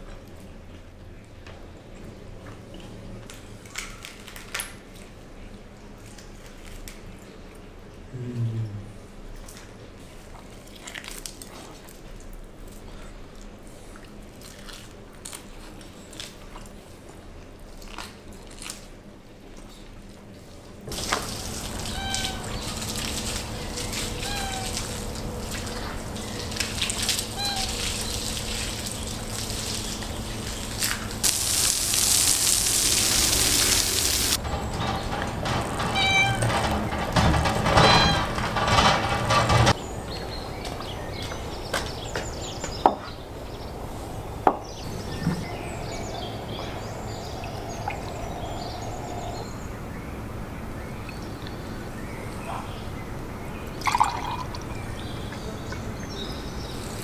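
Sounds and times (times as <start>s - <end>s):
hose water spraying on metal: 20.9s - 39.8s
sharp clicks and knocks: 34.4s - 39.8s.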